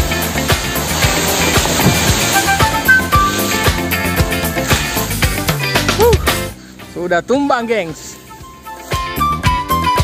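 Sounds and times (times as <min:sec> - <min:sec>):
palm tree crashing through leaves: 0:00.0 - 0:05.2
upbeat background music: 0:00.0 - 0:10.0.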